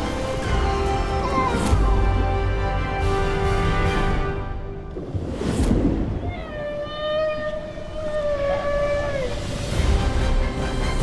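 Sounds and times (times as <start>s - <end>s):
whale moan: 6.2s - 9.8s.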